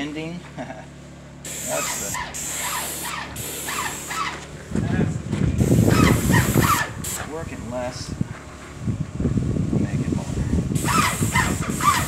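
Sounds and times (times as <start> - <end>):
paint sprayer hissing: 1.4 - 4.5, 5.6 - 7.3, 10.7 - 12.0.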